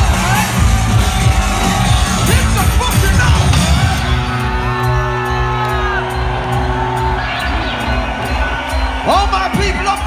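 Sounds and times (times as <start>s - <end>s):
live electronic music: 0.0s - 10.0s.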